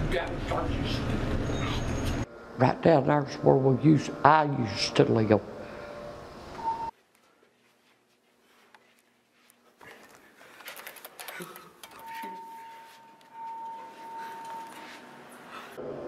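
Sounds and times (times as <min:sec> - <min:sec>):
steady high-pitched tone: 0:02.3 - 0:06.9, 0:12.0 - 0:16.0.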